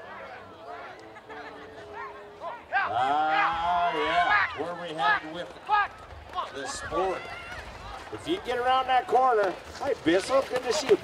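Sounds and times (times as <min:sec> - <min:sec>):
voices whooping and hollering: 0:01.9 - 0:04.6.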